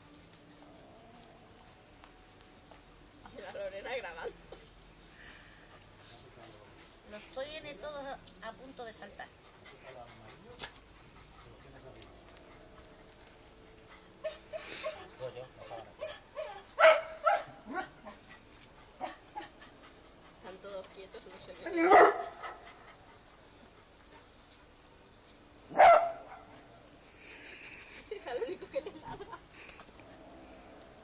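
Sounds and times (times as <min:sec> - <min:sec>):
small dog barking: 0:14.2 - 0:18.1, 0:21.7 - 0:22.6, 0:25.7 - 0:26.6.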